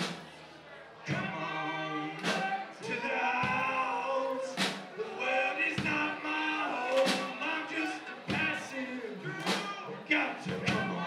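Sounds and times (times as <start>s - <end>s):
crowd singing long notes: 0.0s - 11.0s.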